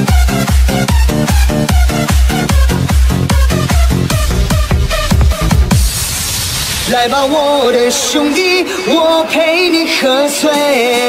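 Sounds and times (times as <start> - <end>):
dance music: 0.0 - 11.0
hissing noise sweep: 3.5 - 7.8
person singing: 6.8 - 11.0.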